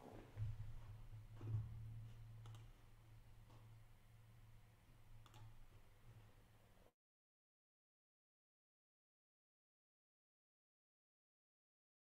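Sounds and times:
low steady hum: 0.0 - 6.9
faint computer clicks: 2.4 - 2.8, 5.2 - 5.6.

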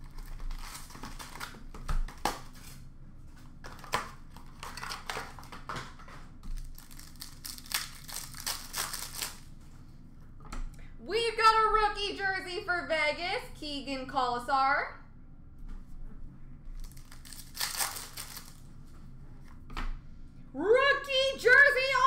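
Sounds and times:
cardboard and paper tearing: 0.0 - 2.8, 16.8 - 18.6
sharp paper crackles: 0.0 - 2.8, 3.6 - 9.5, 16.8 - 18.7.

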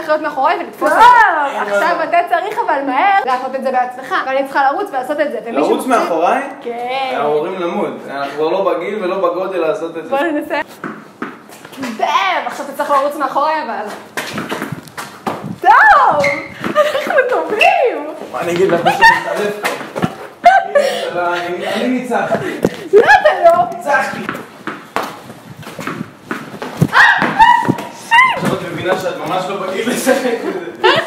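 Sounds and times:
footsteps on brick paving: 13.8 - 17.6.

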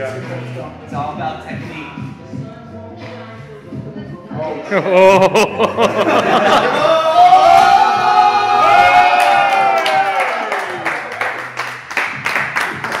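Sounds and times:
person singing drawn-out cheer: 6.6 - 10.5
quick hand claps: 9.8 - 13.0.

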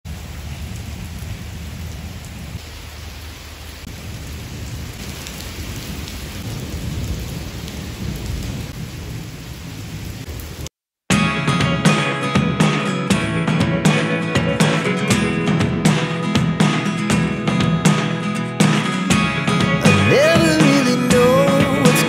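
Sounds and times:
heavy rain on paving: 0.0 - 10.7, 16.4 - 22.0
guitar music: 11.1 - 22.0.

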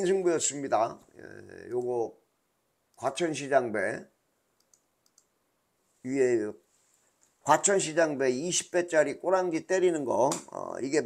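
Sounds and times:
faint short clicks: 4.6 - 5.3.

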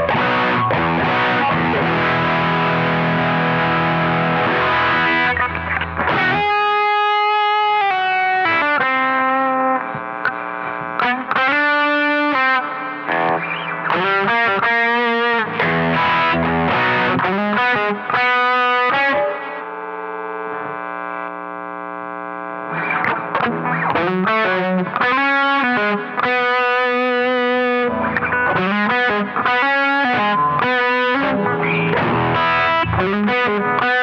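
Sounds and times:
distorted electric guitar: 0.0 - 34.0.

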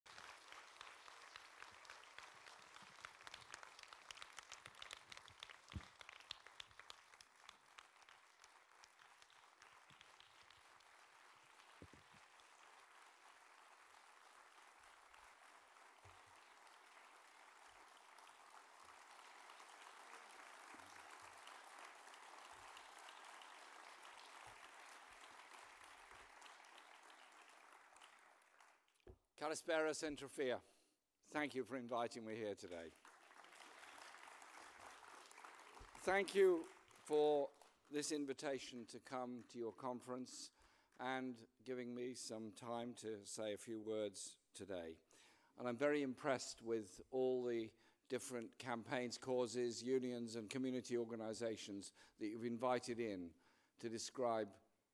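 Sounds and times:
faint audience applause: 0.0 - 29.1, 32.6 - 40.9.

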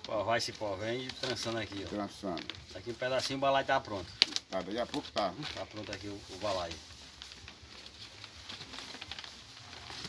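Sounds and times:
vine strands rustling and clicking: 0.0 - 10.0.

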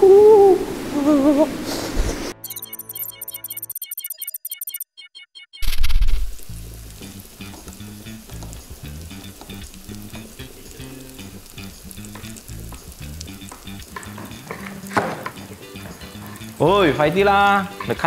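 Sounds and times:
food sizzling in hot oil: 5.7 - 18.0.

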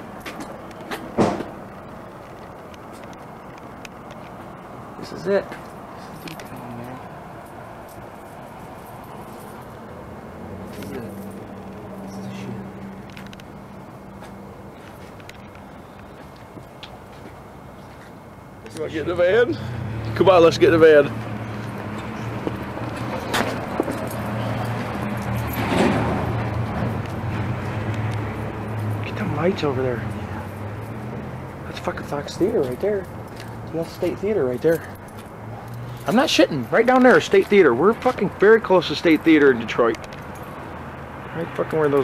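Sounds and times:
city street noise: 0.0 - 42.0
traffic hum: 0.0 - 42.0
vehicle passing: 0.0 - 42.0
light metallic jingle: 5.0 - 13.8, 20.2 - 27.1, 28.1 - 40.8.

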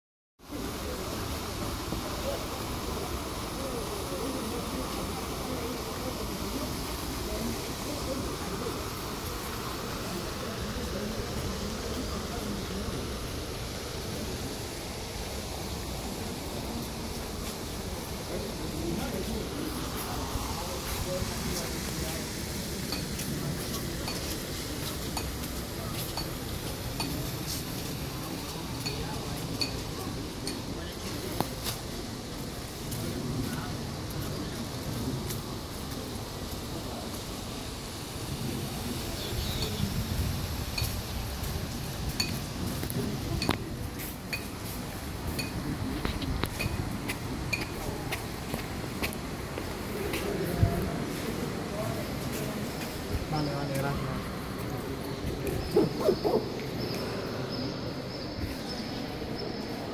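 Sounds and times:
steady outdoor hiss: 0.4 - 59.9
fountain spraying onto water: 0.5 - 55.5
people talking: 0.5 - 59.9.

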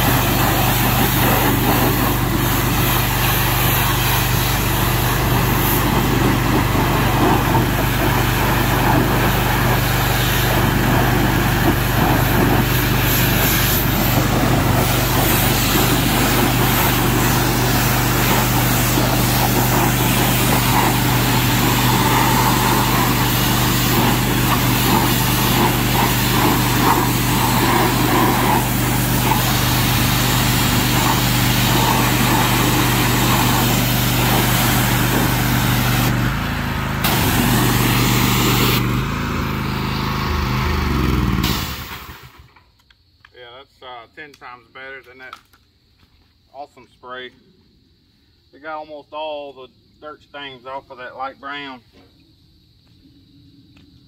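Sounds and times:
high-pressure water spray hissing: 0.0 - 42.5
pressure washer engine running: 0.0 - 42.5.

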